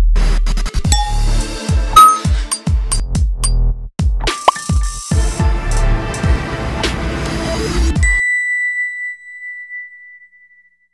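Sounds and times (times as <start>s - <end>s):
bell-like chime: 2.0s - 2.4s, 8.0s - 10.9s.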